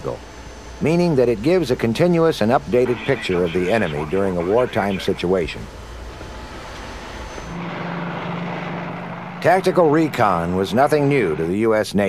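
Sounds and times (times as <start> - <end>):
aircraft engine drone: 0.0 - 12.0
aircraft engine roar: 0.0 - 12.0.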